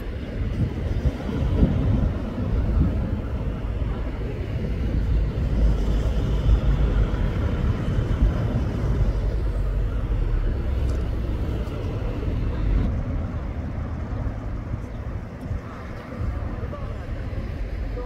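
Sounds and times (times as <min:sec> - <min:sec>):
low rumble of road traffic: 0:00.0 - 0:18.0.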